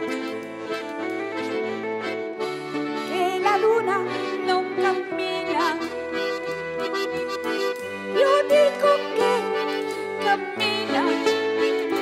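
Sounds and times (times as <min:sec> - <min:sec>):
button accordions playing folk music: 0:00.0 - 0:12.0.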